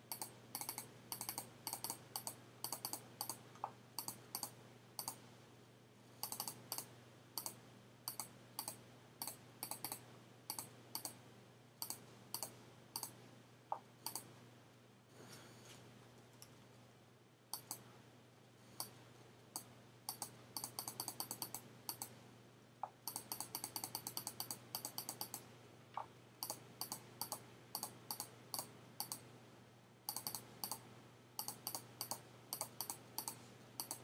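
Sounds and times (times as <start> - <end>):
faint steady hum: 0.0 - 34.0
computer mouse clicks: 0.1 - 5.2, 6.2 - 11.2, 11.8 - 14.3, 17.5 - 17.9, 18.8 - 19.0, 19.6 - 22.2, 22.8 - 29.2, 30.1 - 34.0.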